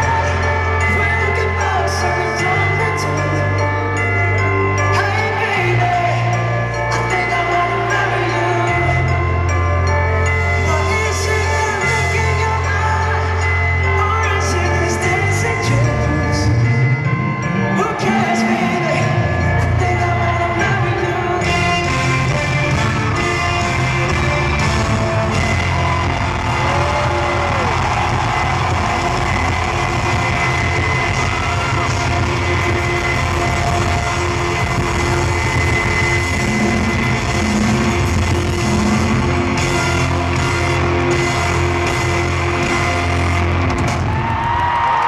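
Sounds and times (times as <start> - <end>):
bass guitar: 0.0 - 44.8
live band playing pop-rock: 0.0 - 45.0
electric guitars: 21.4 - 45.0
trumpet: 21.4 - 45.0.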